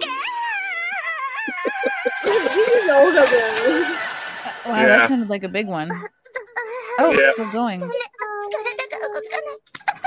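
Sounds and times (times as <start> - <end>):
woman's high pitched cry: 0.0 - 4.6.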